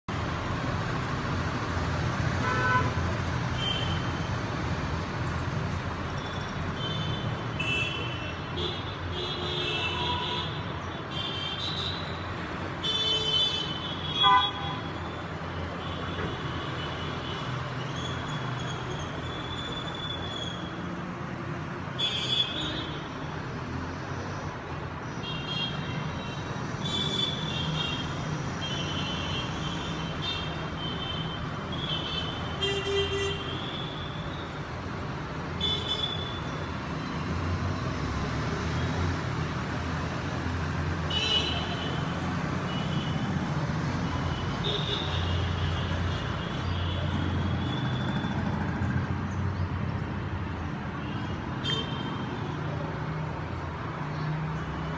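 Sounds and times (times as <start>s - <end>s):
street traffic rumble: 0.0s - 54.9s.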